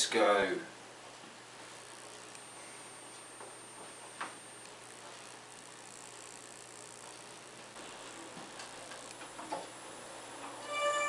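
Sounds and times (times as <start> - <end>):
faint high-pitched whine: 0.0 - 11.0
room hiss: 0.0 - 11.0.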